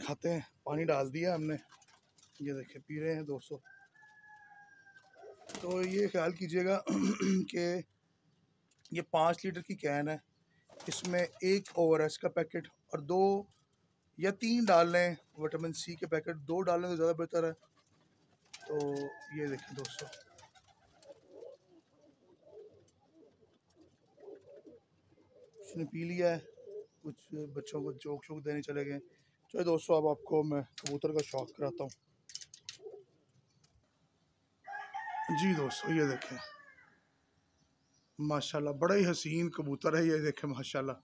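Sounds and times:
man's voice: 0.0 - 1.6, 10.9 - 13.4, 18.7 - 20.2, 38.2 - 41.0
pigeons cooing: 19.7 - 28.0, 32.7 - 33.3.

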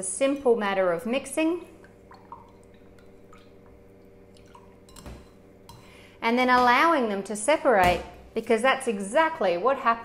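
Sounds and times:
liquid sloshing: 1.8 - 5.9.

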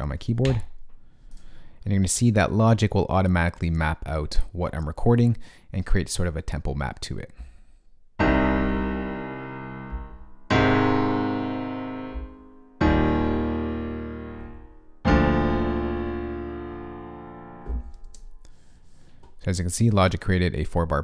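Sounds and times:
piano block chords: 8.2 - 18.0.

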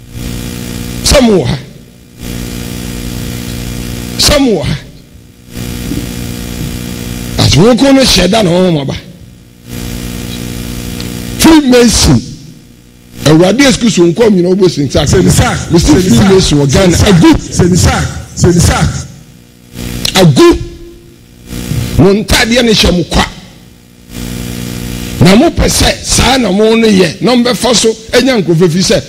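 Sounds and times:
electrical mains hum: 0.0 - 29.0
man's voice: 1.0 - 1.7, 4.2 - 4.9, 7.4 - 9.1, 13.2 - 19.2, 20.1 - 20.8, 22.0 - 23.5, 25.2 - 29.0.

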